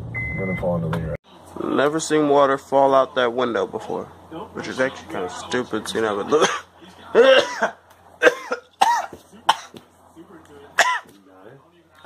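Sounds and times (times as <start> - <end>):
person coughing: 6.3 - 9.8, 10.8 - 11.1.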